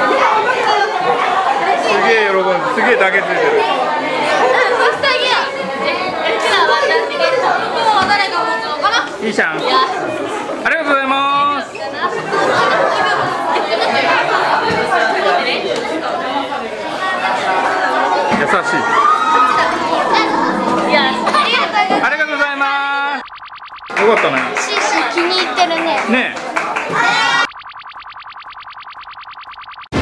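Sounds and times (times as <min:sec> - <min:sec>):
chatter of many voices: 0:00.0 - 0:23.3, 0:23.9 - 0:27.5
background music: 0:19.7 - 0:22.7.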